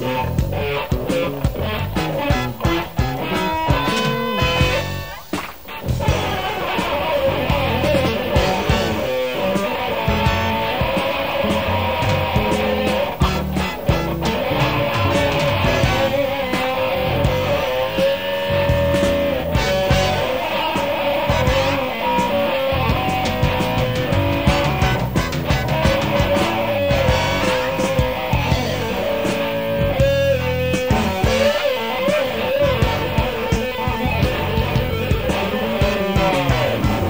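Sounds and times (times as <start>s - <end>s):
bass guitar: 0.0s - 37.0s
drums: 0.0s - 37.0s
electric guitar lead: 0.0s - 37.0s.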